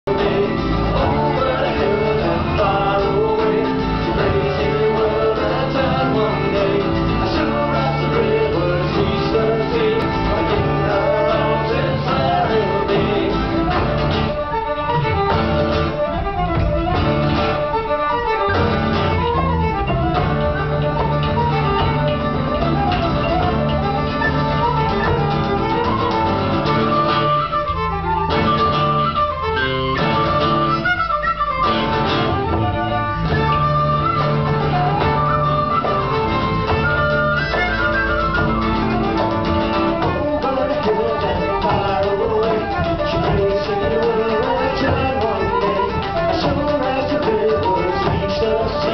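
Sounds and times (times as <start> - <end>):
bowed fiddle melody: 0.0 - 48.9
strummed acoustic guitar: 0.0 - 48.9.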